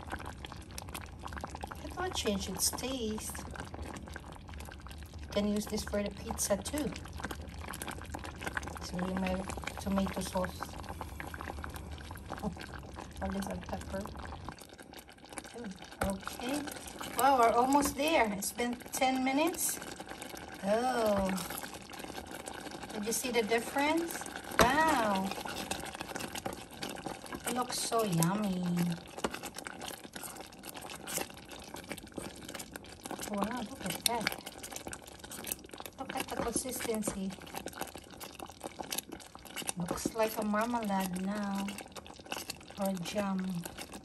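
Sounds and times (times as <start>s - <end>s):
low steady hum: 0.0s - 29.6s, 33.0s - 35.2s, 35.8s - 38.0s, 39.2s - 42.0s, 42.7s - 44.0s
thick sauce bubbling and popping: 0.0s - 44.0s
wooden spoon stirring pot: 0.0s - 44.0s.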